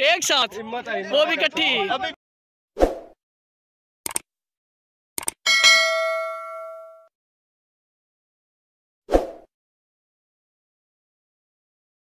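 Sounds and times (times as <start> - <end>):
quick clicks: 4.0 - 4.3, 5.2 - 5.4
bell-like ding: 5.5 - 7.1.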